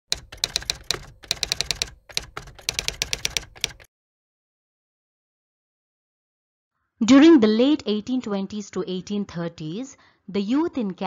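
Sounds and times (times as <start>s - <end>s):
typewriter key strikes: 0.1s - 3.9s.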